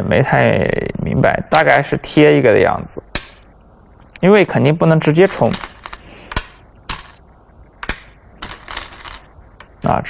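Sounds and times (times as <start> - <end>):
stones clicking onto board: 5.3 - 7.2, 7.8 - 9.8.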